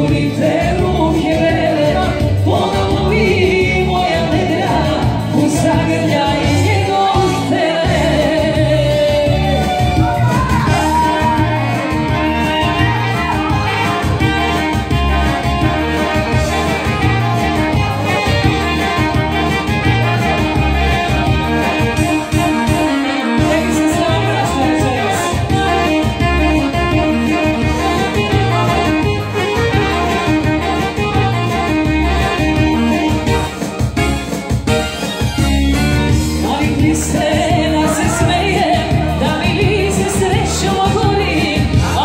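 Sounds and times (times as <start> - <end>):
person singing: 0.0 - 33.8, 36.2 - 42.0
band playing loud instrumental music: 0.0 - 42.0.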